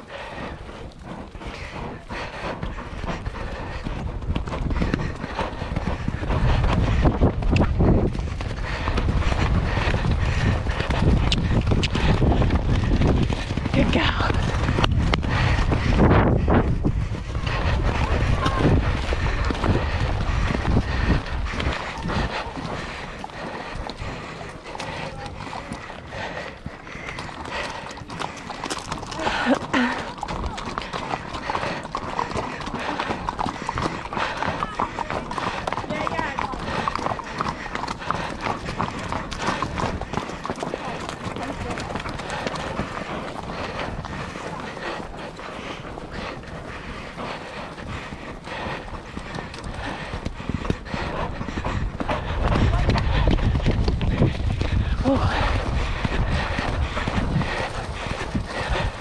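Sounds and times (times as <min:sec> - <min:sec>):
horse hooves clip-clopping: 0:00.0 - 0:59.0
people talking: 0:13.8 - 0:14.4, 0:34.5 - 0:36.9, 0:40.8 - 0:42.0, 0:55.0 - 0:55.4.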